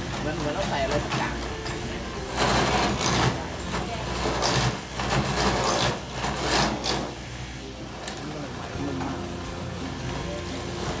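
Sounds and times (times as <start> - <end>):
machine motor hum: 0.0 - 11.0
cutters biting into wood: 2.4 - 7.2.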